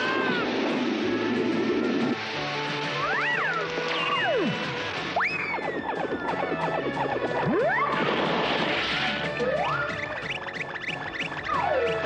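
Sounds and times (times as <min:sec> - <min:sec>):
cartoon background music: 0:00.0 - 0:12.0
swooping pitch glides: 0:03.0 - 0:12.0.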